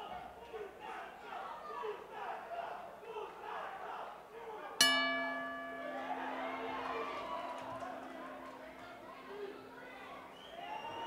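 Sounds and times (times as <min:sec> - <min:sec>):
boxing ring bell ringing: 0:04.8 - 0:11.0
crowd murmur: 0:05.0 - 0:11.0.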